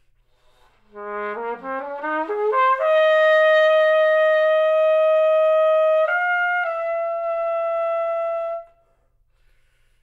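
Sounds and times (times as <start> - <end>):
trumpet holding high note: 0.9 - 8.9.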